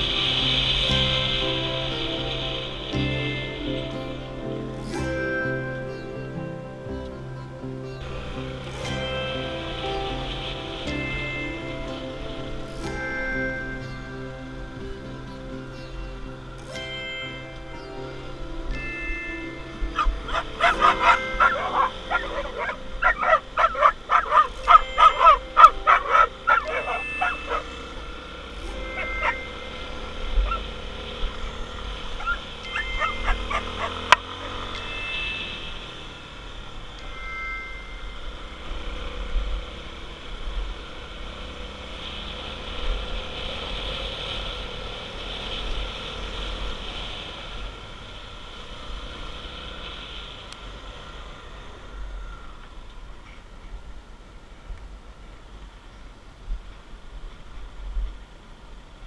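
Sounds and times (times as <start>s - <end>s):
dirt motorcycle running: 0.0s - 37.0s, 38.2s - 52.2s
dog barking: 20.3s - 27.7s, 32.2s - 34.1s.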